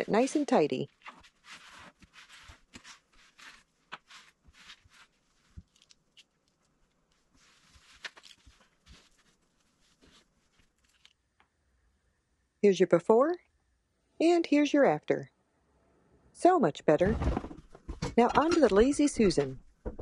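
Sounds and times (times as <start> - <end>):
cloth wiping wooden shelf: 0.0 - 5.6
small knocks: 17.2 - 20.0.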